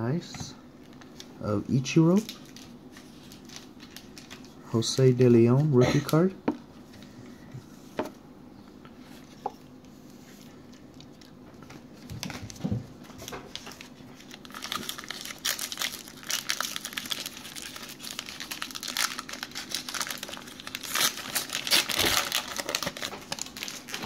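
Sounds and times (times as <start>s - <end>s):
wrapper crinkling: 2.0s - 4.6s, 11.9s - 24.0s.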